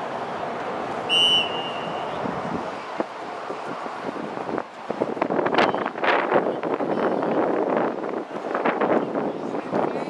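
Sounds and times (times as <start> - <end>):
referee whistle blast: 1.1 - 2.2
wind noise: 1.1 - 10.0.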